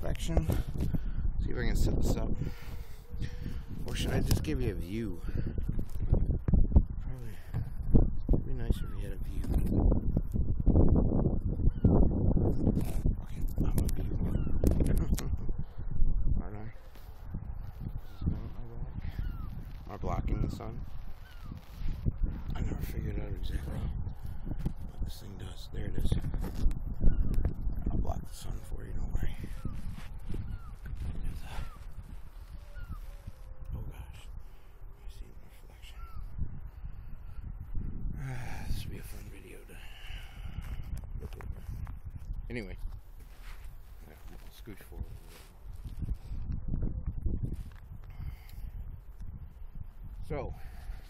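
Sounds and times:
wind buffeting microphone: 0.0 - 51.0
bird calling faintly: 8.1 - 9.4, 16.7 - 22.0, 29.4 - 37.4.

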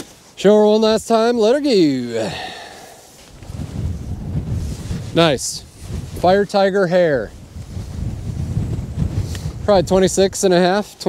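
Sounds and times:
wind buffeting microphone: 2.3 - 11.0.

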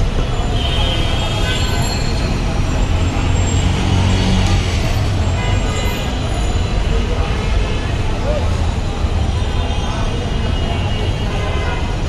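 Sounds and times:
busy street traffic: 0.0 - 12.0.

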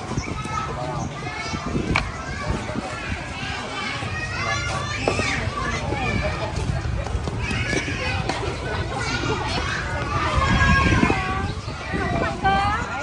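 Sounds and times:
crowd talking and calling out: 0.0 - 13.0.

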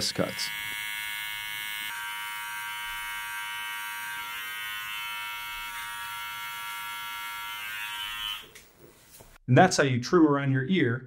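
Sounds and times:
cordless trimmer buzzing: 0.0 - 8.6.

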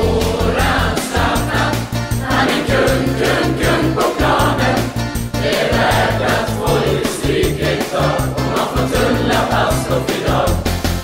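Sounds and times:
voices singing: 0.0 - 10.8
music with steady beat: 0.0 - 11.0.

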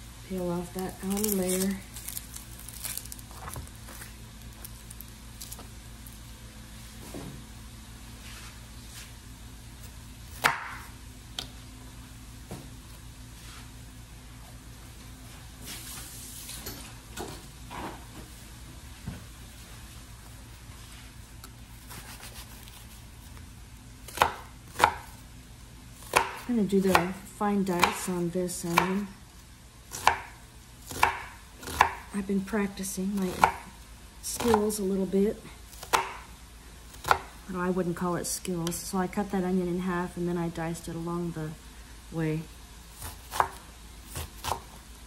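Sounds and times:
faint hiss and hum: 0.0 - 45.0
knife cutting onion on board: 10.3 - 10.9, 21.8 - 23.0, 24.0 - 25.2, 26.0 - 29.1, 29.9 - 32.2, 36.9 - 37.4, 42.9 - 44.8.

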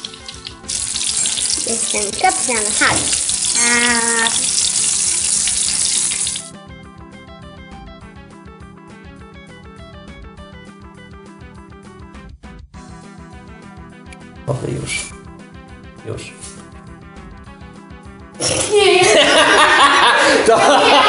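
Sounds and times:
background music with quick beat: 0.0 - 3.8
food sizzling in hot oil: 0.0 - 6.5.

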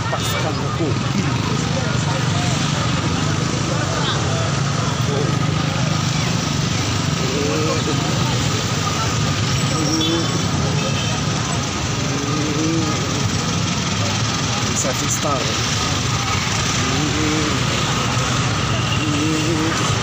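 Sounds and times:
motorcycle and car engines: 0.0 - 20.0
street crowd talking: 0.0 - 20.0
voices standing out: 0.0 - 20.0.

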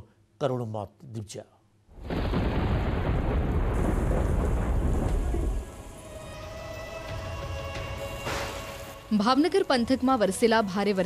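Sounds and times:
heavy rain pouring: 2.0 - 9.0.

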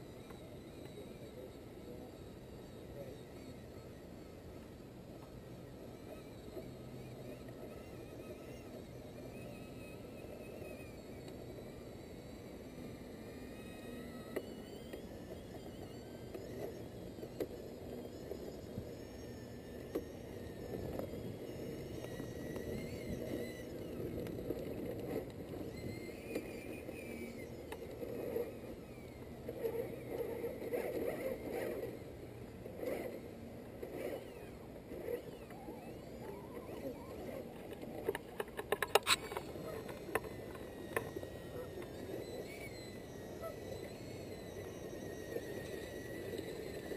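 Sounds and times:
electric motor whirring: 0.0 - 46.9
sharp clicks and knocks: 37.6 - 41.2.

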